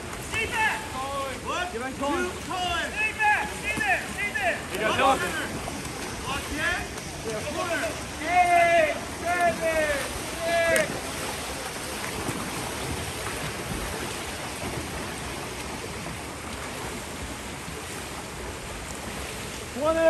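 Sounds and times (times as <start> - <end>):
splashing water: 0.0 - 20.0.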